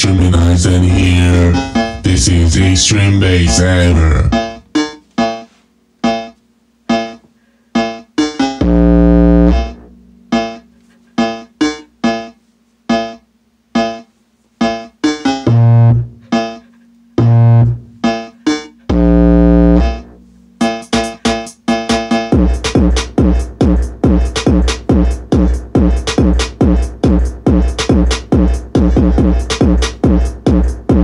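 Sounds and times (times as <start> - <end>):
deep bass notes: 0.0 - 4.6, 8.6 - 10.0, 15.5 - 16.3, 17.2 - 17.9, 18.9 - 20.2
electronic music through speakers: 0.0 - 5.4, 7.8 - 31.0.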